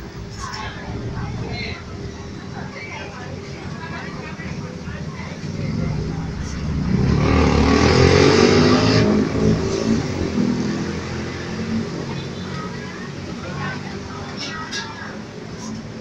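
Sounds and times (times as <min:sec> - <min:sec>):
vehicle engine passing by: 0:03.8 - 0:12.3.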